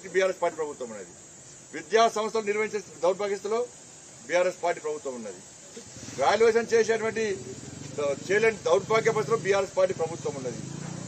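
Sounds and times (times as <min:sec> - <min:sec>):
man speaking: 0:00.0 - 0:05.5, 0:06.2 - 0:10.6
steady faint hiss: 0:00.0 - 0:11.0.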